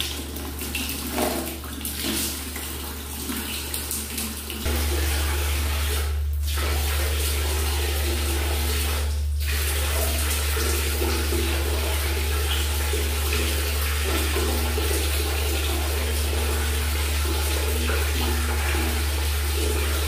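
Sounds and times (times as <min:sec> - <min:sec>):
person washing face: 0:00.0 - 0:20.0
water running from a tap: 0:00.0 - 0:20.0
steady low hum: 0:04.6 - 0:20.0.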